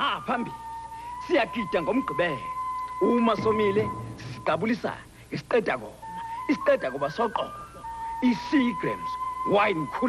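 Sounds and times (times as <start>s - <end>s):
commercial background music: 0.0s - 10.0s
person speaking: 3.2s - 5.2s.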